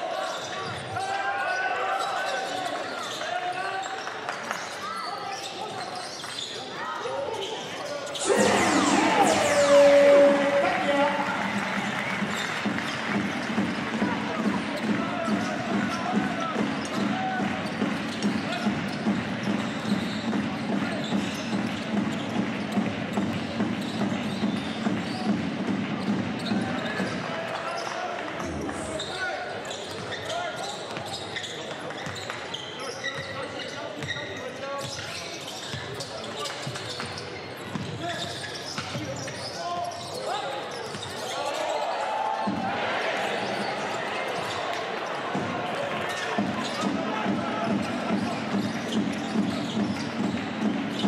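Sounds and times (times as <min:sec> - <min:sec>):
arena crowd noise: 0:00.0 - 0:51.0
players shouting: 0:08.2 - 0:12.2.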